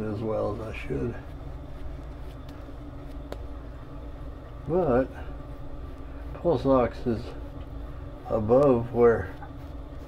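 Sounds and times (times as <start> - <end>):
low background hum: 0.0 - 10.0
shaving brush swishing: 0.2 - 3.6, 4.6 - 10.0.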